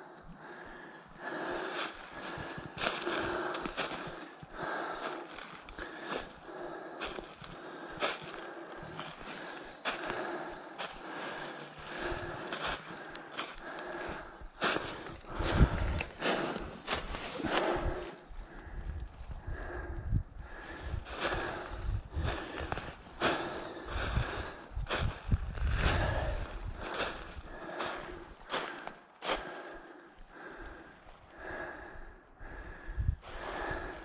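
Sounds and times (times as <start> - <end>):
footsteps through dry leaves: 1.6 - 6.4, 7.0 - 14.0, 14.6 - 17.3, 21.1 - 29.6
heavy low bumps: 7.0 - 28.9.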